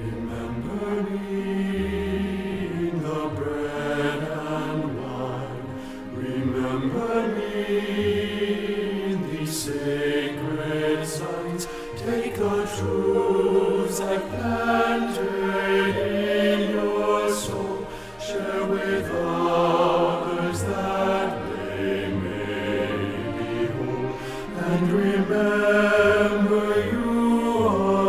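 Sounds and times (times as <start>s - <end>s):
piano accompaniment: 0.0s - 28.0s.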